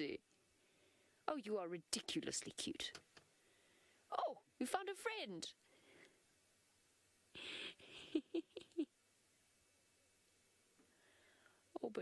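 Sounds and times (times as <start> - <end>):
person laughing: 7.4 - 8.9.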